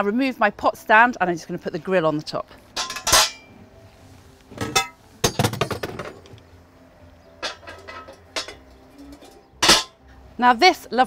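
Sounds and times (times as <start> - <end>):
metal grill plate clanking: 2.7 - 3.6, 4.5 - 6.4, 7.3 - 10.0.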